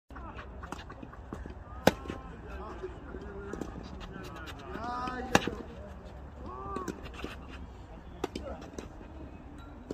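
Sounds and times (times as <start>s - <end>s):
players calling out: 0.1s - 9.4s
rackets hitting tennis balls: 0.2s - 9.1s.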